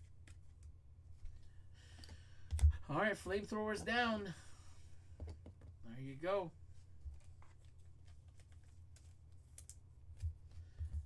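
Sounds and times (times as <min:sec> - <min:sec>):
trading cards handled on a mat: 0:00.0 - 0:02.2, 0:06.7 - 0:11.0
low steady hum: 0:00.0 - 0:11.0.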